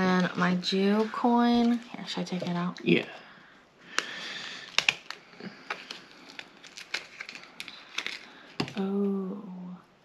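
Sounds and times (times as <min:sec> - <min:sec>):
light crinkling: 0:00.0 - 0:02.8, 0:03.9 - 0:09.3.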